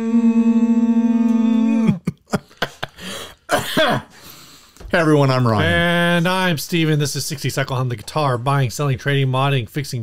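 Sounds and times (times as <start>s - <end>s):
man clearing his throat: 3.5s - 4.2s.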